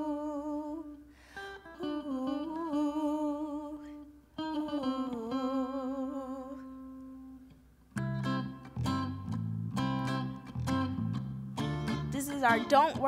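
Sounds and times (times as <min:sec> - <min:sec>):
electric guitar chords: 0:00.0 - 0:13.0
bass guitar: 0:07.2 - 0:13.0.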